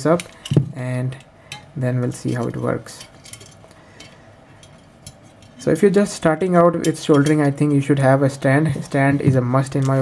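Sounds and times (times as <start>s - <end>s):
sheet metal and wire clinking: 0.0s - 7.8s.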